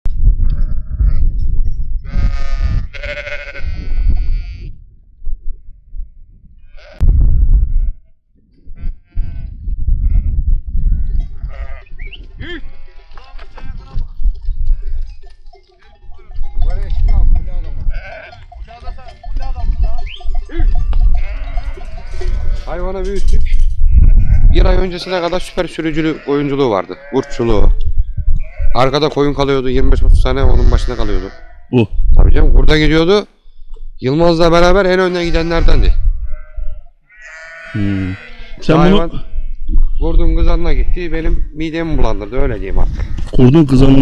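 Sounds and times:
sheep bleating: 0:02.0 - 0:04.8, 0:06.6 - 0:08.1, 0:08.7 - 0:14.0, 0:17.6 - 0:18.5, 0:20.5 - 0:22.8, 0:23.8 - 0:27.7, 0:28.3 - 0:28.9, 0:30.4 - 0:31.7, 0:35.0 - 0:39.7.

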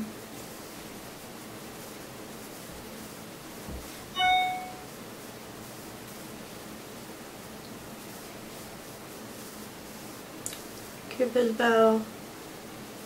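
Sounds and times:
bright ding: 0:04.2 - 0:04.9.

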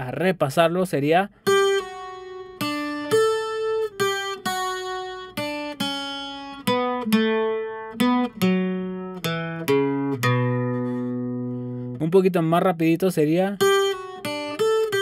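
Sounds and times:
acoustic guitar picked notes: 0:01.3 - 0:15.0.

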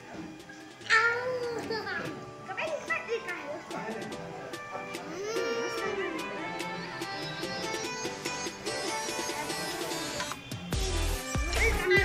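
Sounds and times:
children's voices: 0:00.8 - 0:03.9, 0:05.1 - 0:07.5, 0:11.4 - 0:12.0.

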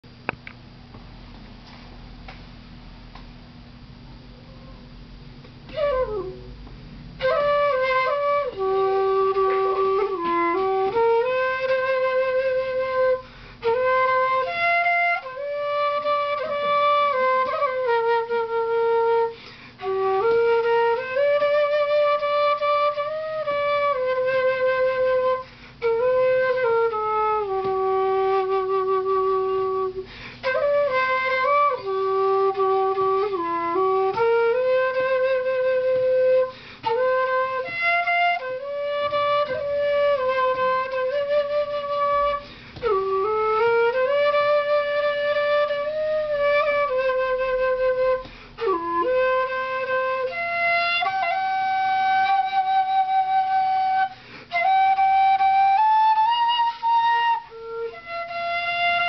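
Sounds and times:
bamboo flute melody: 0:04.3 - 0:05.0, 0:05.6 - 0:59.0.

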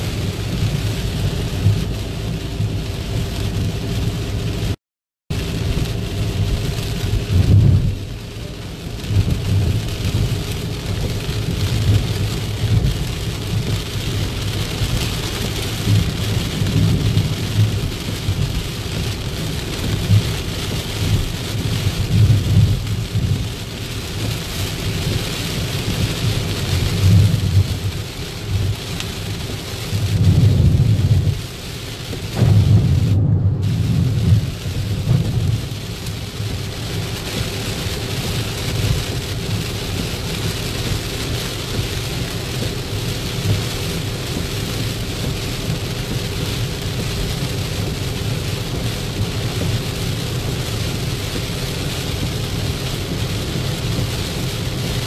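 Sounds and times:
deep rumble: 0:00.0 - 0:55.0
heavy rain on car roof: 0:00.0 - 0:55.0.

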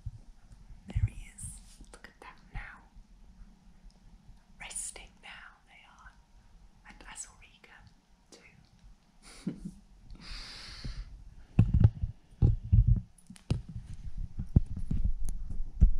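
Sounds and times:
woman whispering: 0:00.9 - 0:03.0, 0:04.6 - 0:06.2, 0:06.8 - 0:08.7.

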